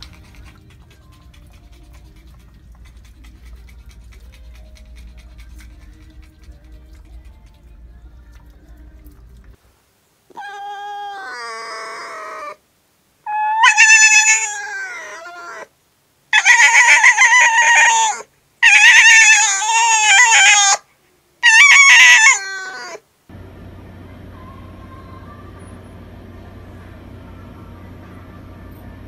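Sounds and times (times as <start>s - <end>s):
dog yowling: 10.3s - 12.6s, 13.3s - 15.7s, 16.3s - 20.8s, 21.4s - 23.0s.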